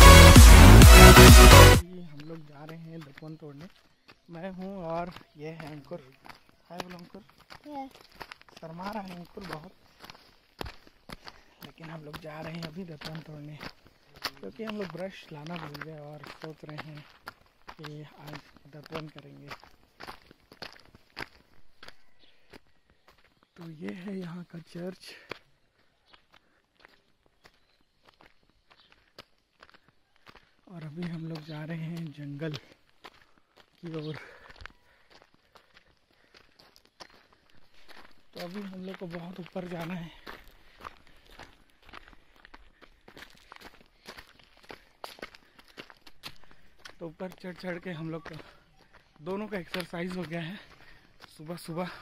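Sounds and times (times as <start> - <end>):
footsteps on dirt and stones: 1.6 - 52.0.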